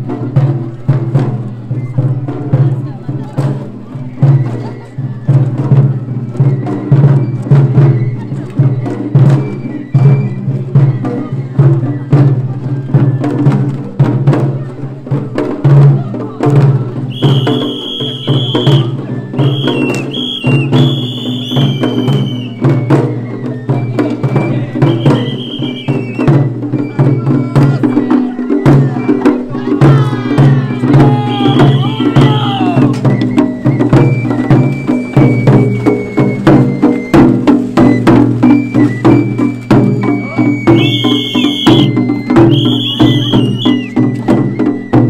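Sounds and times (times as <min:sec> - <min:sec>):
taiko drums beating: 0:00.0 - 0:45.0
high flute melody: 0:04.0 - 0:13.6, 0:17.0 - 0:45.0.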